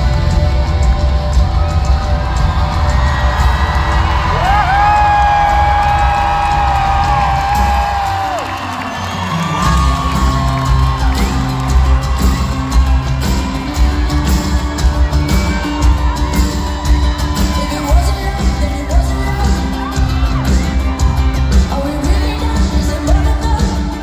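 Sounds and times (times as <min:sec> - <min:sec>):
crowd cheering and whooping: 0:00.0 - 0:24.0
live pop-rock band playing: 0:00.0 - 0:24.0.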